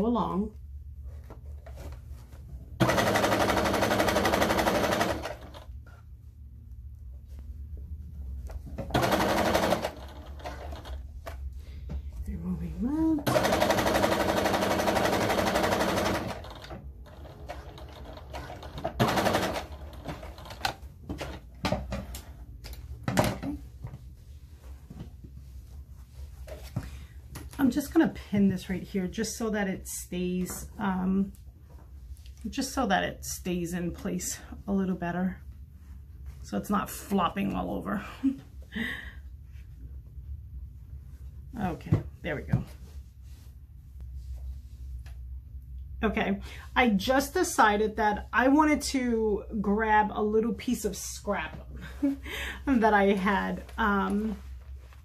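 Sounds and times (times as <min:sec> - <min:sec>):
sewing machine stitching: 0:02.8 - 0:05.7, 0:08.8 - 0:11.0, 0:13.2 - 0:21.4.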